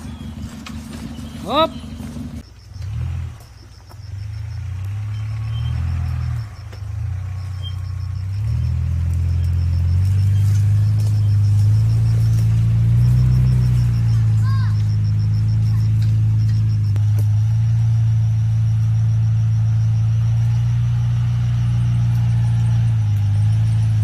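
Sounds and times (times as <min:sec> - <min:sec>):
off-road vehicle engine: 0:00.0 - 0:24.0.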